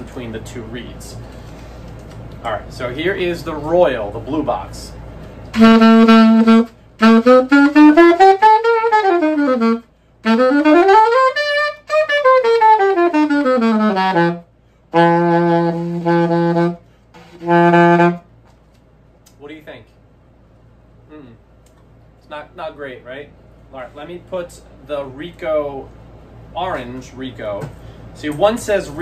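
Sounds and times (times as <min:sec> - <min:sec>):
alto saxophone playing: 0:05.5 - 0:18.3.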